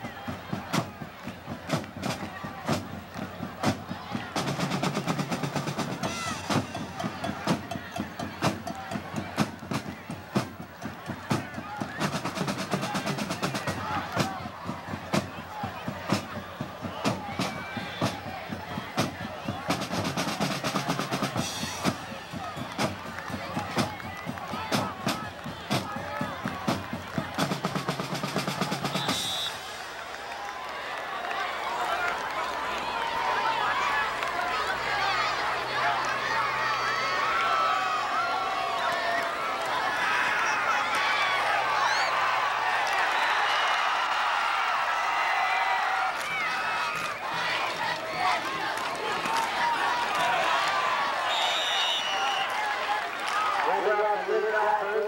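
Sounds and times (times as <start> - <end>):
snare drum strokes: 0.6 - 15.4, 16.0 - 30.0.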